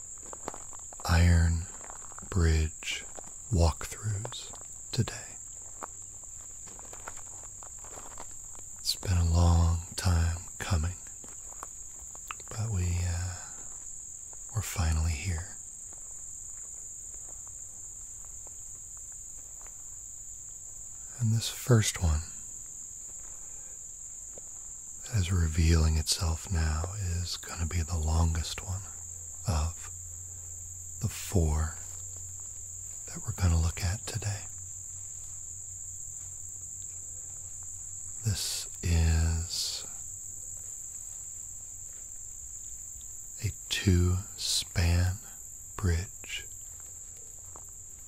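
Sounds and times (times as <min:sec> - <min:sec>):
footsteps on gravel: 0:00.0 - 0:25.0, 0:31.1 - 0:43.3, 0:46.4 - 0:48.0
insects singing: 0:00.0 - 0:48.0.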